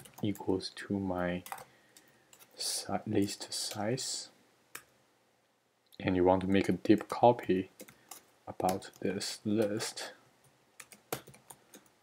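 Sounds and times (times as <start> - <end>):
computer keyboard keystrokes: 1.4 - 2.6, 10.8 - 11.9.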